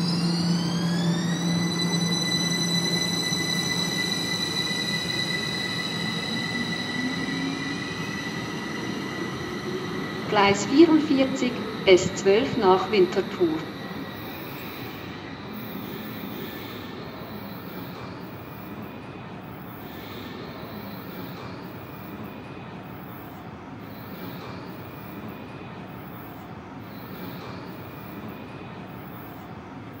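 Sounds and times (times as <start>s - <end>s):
underground station rumble and hum: 0.0s - 30.0s.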